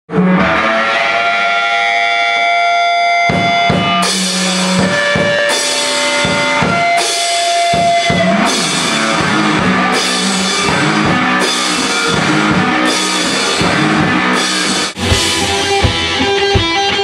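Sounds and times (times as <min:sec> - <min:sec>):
electric guitar chords ringing: 0:00.1 - 0:17.0
drum kit hits: 0:03.0 - 0:17.0.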